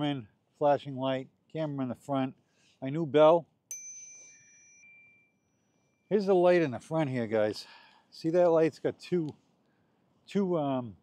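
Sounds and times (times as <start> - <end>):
two-tone bicycle bell ring: 3.7 - 6.2.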